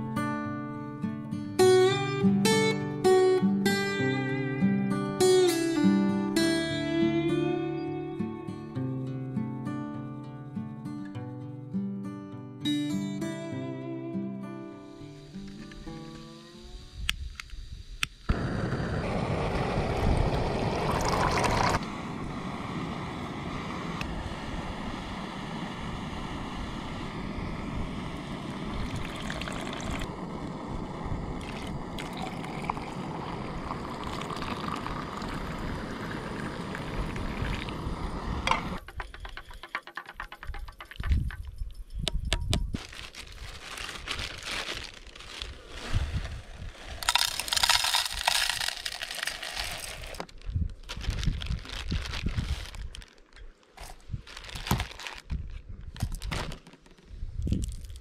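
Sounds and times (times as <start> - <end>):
gas stove burning with a hiss: 15.0 - 38.8
water pouring into a mug: 20.6 - 21.8, 28.8 - 30.1, 31.4 - 37.8
camp cooking gear clicks and rustles: 38.5 - 45.9, 46.7 - 58.0.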